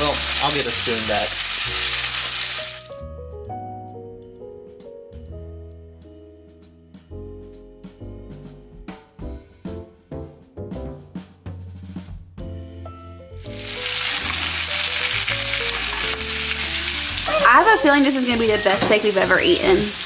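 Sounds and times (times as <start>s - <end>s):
steak sizzling in butter: 0.0s - 3.0s, 13.4s - 20.0s
piano background music: 0.0s - 20.0s.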